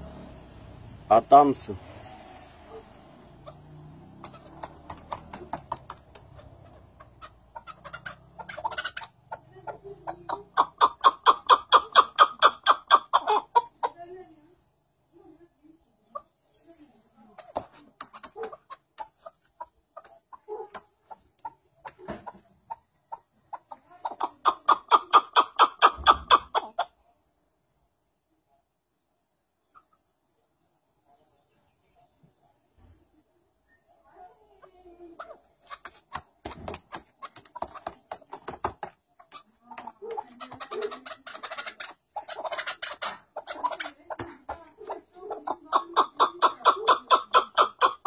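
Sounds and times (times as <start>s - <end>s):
partridge rapid chuck calls: 3.4s - 13.9s, 17.4s - 26.7s, 35.2s - 48.0s.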